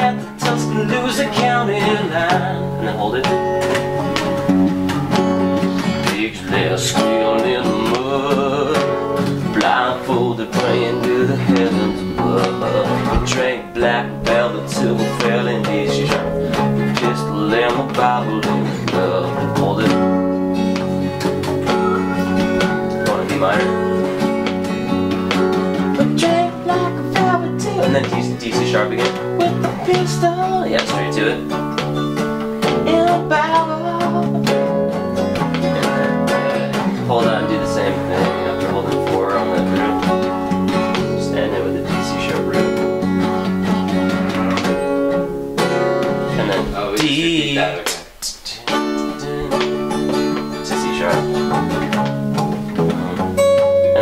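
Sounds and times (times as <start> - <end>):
live band playing country-blues: 0.0 - 47.2, 48.7 - 54.0.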